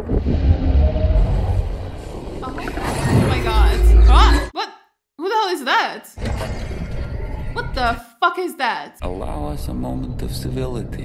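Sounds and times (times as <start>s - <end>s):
deep low rumble: 0.0s - 4.5s.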